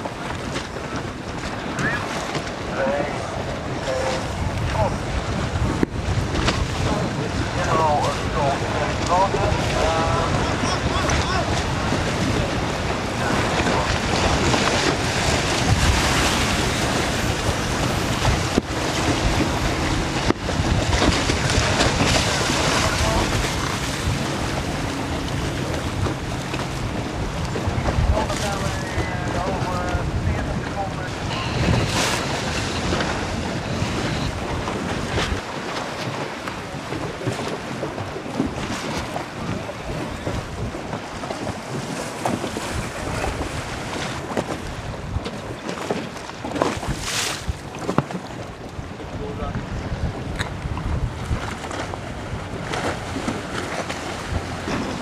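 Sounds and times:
choppy waves slapping: 0:00.0 - 0:55.0
wind buffeting microphone: 0:00.0 - 0:55.0.

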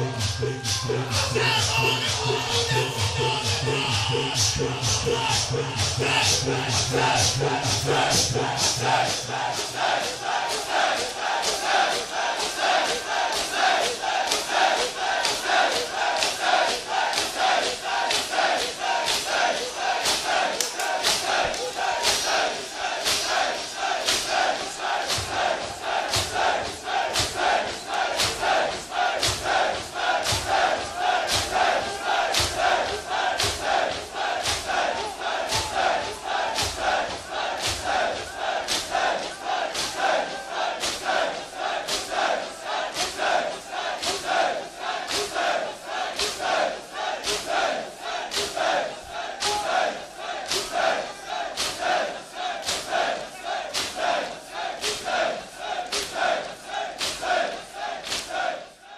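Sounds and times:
crowd beating chests in unison: 0:00.0 - 0:58.9
crowd chanting: 0:00.0 - 0:58.9.

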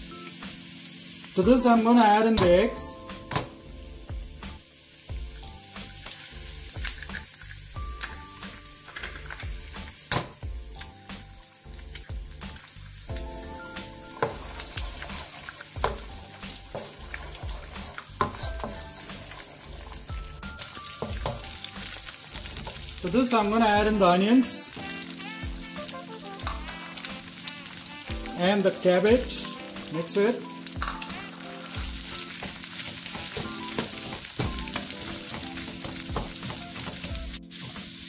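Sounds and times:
eggs sizzling in hot oil: 0:00.0 - 0:38.0
wooden spatula scraping wok: 0:13.8 - 0:37.8.

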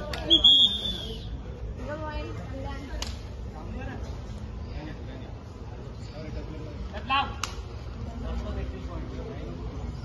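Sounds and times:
sharp hand slap: 0:02.9 - 0:03.3, 0:07.4 - 0:07.7.

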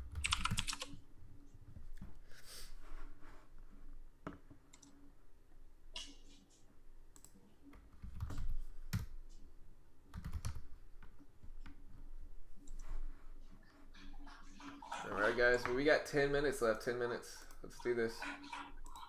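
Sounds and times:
keyboard typing: 0:00.0 - 0:01.0, 0:04.7 - 0:05.0, 0:06.0 - 0:09.4, 0:10.1 - 0:11.8.

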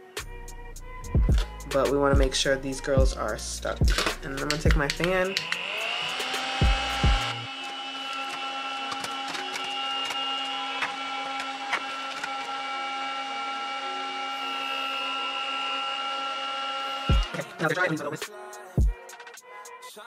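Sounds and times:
handheld fan motor whine: 0:02.6 - 0:18.2.

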